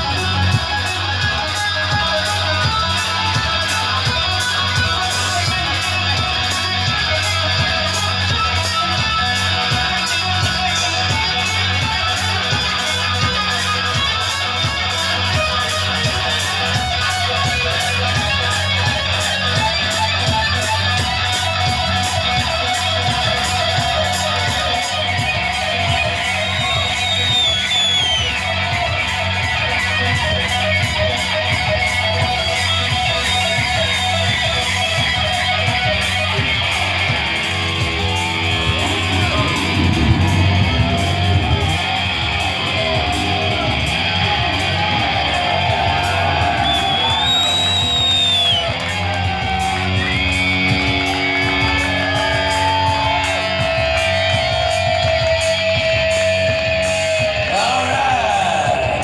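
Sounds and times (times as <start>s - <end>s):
drums pounding: 0.0s - 59.0s
electric guitar solo: 0.0s - 59.0s.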